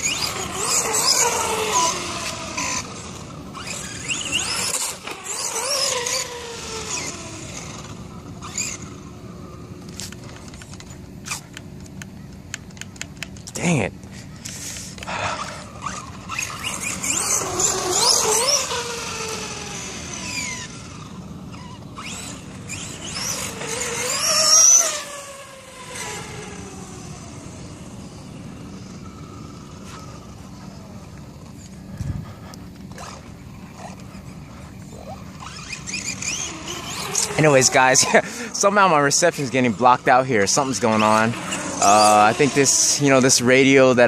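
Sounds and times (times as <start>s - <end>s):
electric motor whining: 0.0s - 11.4s, 14.4s - 44.0s
tyres on asphalt: 0.0s - 44.0s.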